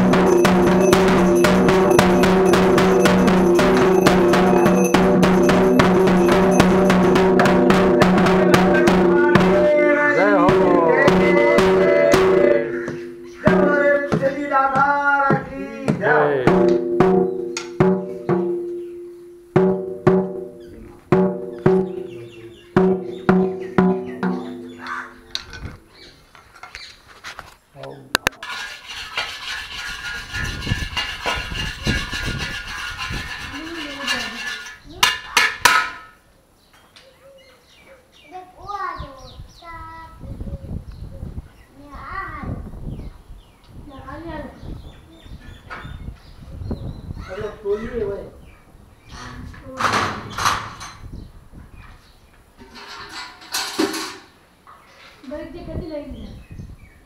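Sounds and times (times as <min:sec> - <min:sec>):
ringing bell strikes: 0:00.0 - 0:09.6
drum beating: 0:00.0 - 0:18.8, 0:19.5 - 0:25.4
faint voices: 0:08.2 - 0:16.6.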